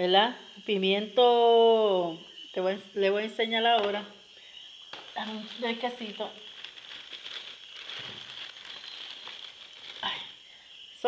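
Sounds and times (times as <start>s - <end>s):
rustling and crinkling: 4.9s - 10.5s.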